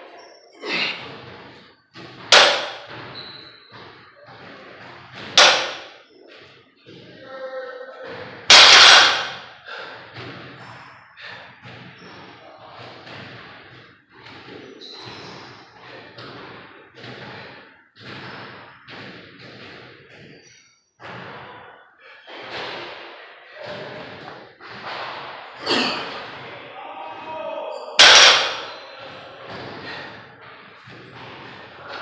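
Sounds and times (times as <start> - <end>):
heavy breathing: 9.1 - 11.9, 29.6 - 30.9.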